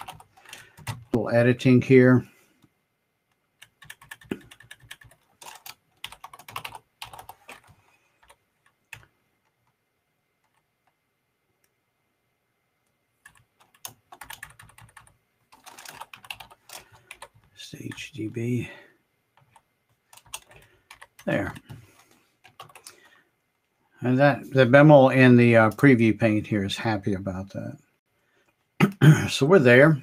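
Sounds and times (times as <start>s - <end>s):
computer keyboard typing: 0.0s - 1.2s, 3.3s - 9.8s, 10.4s - 11.0s, 13.2s - 18.1s, 19.4s - 23.1s.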